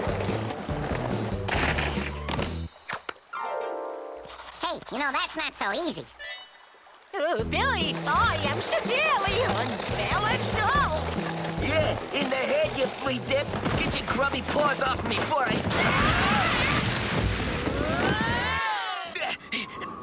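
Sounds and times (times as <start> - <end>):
rising and falling vocal cries: 17.8 - 20.0.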